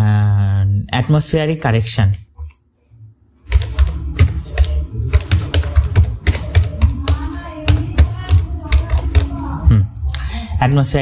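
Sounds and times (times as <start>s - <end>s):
keyboard typing: 3.4s - 11.0s.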